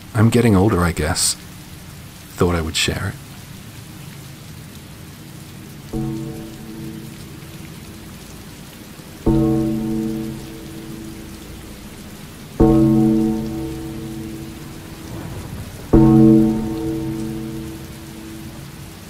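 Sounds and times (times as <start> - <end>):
steady rain: 0.0 - 19.0
deep ringing musical hit: 6.0 - 19.0.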